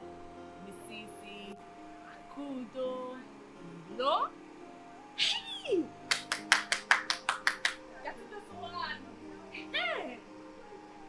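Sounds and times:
background music: 0.0 - 11.0
woman exclaiming: 5.2 - 5.9.

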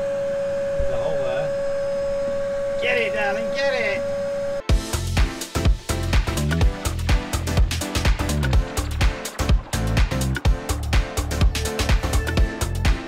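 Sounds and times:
vacuum cleaner whine: 0.0 - 4.7
music with heavy beat: 4.7 - 13.0.

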